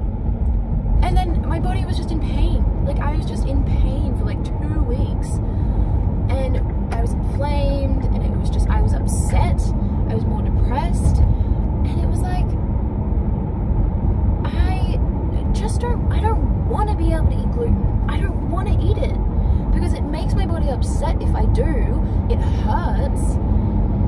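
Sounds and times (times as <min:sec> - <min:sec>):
road and engine rumble in car: 0:00.0 - 0:24.0
woman's voice: 0:01.0 - 0:05.5, 0:06.3 - 0:11.3, 0:11.9 - 0:12.5, 0:14.4 - 0:23.4.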